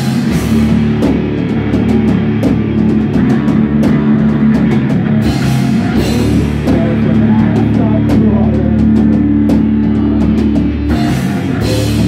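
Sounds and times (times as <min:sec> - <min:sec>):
drum kit with cymbals: 0:00.0 - 0:12.0
electric guitars: 0:00.0 - 0:12.0.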